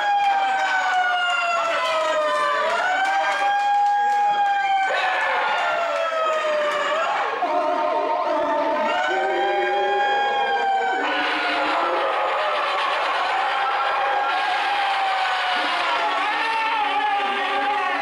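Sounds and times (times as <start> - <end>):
siren-like wailing through megaphone: 0.0 - 18.0.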